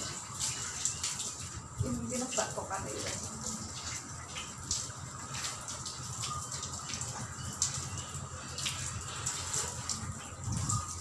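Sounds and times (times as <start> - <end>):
hose water splashing on metal and tile: 0.0 - 11.0.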